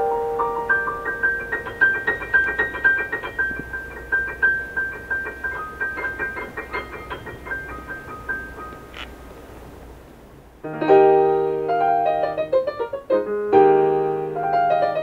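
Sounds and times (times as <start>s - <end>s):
loud piano chord: 0.0s - 8.9s, 10.6s - 15.0s
high piano notes: 0.0s - 9.5s, 10.6s - 15.0s.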